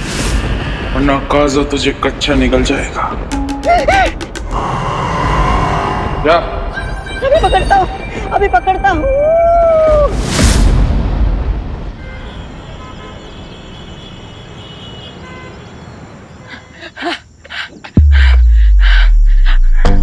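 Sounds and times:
rhythmic beat: 3.3 - 4.8
deep bass drone: 3.3 - 6.7.

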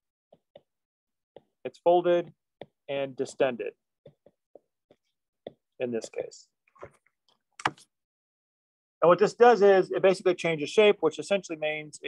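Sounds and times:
stylus tapping on screen: 0.3 - 1.6, 2.2 - 2.9, 4.0 - 6.2.

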